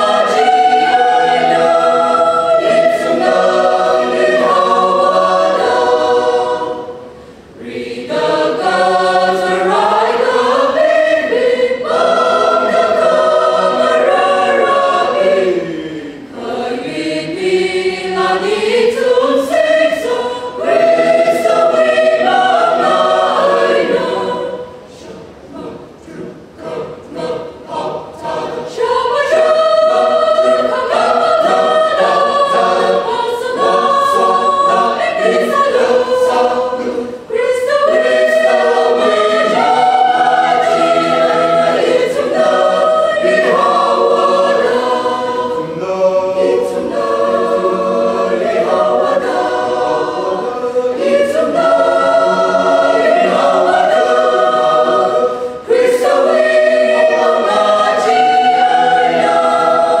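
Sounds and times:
mixed choir singing: 0:00.0 - 1:00.0.

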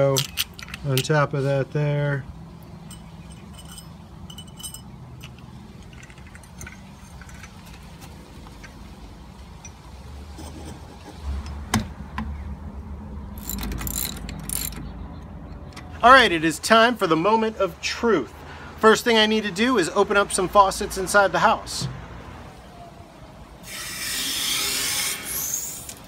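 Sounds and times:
metal parts clinking: 0:00.0 - 0:01.1, 0:02.8 - 0:08.8, 0:13.3 - 0:14.9
bright jingling clinks: 0:02.8 - 0:07.5.

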